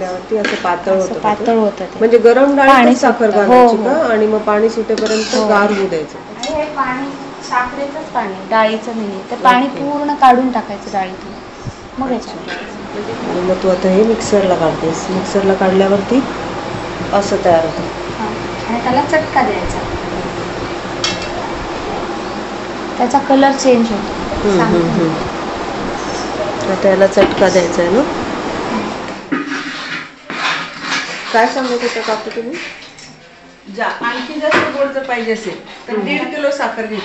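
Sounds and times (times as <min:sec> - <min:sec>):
woman talking: 0:00.0 - 0:16.4, 0:17.1 - 0:20.0, 0:23.0 - 0:25.3, 0:26.1 - 0:28.2, 0:31.3 - 0:32.7, 0:33.7 - 0:37.0
steady room hiss: 0:00.0 - 0:37.0
metal ladle scraping metal pot: 0:05.0 - 0:06.0, 0:29.3 - 0:33.1.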